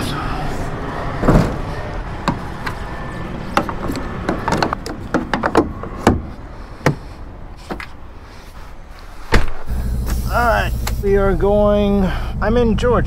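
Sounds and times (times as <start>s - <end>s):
knocks and clacks on truck cab: 3.5s - 7.9s
low steady rumble: 9.6s - 13.0s.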